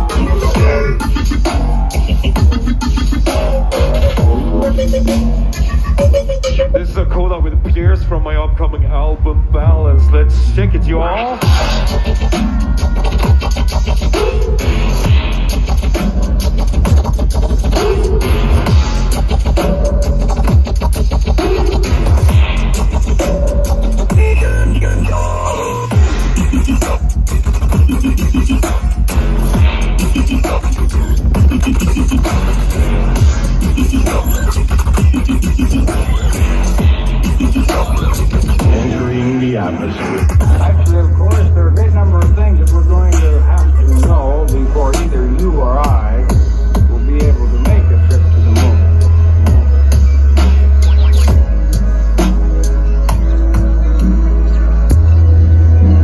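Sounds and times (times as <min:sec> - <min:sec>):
loud electronic dance music: 0:00.0 - 0:08.5, 0:09.3 - 0:56.0
downward-sweeping bass hit: 0:38.6 - 0:51.7.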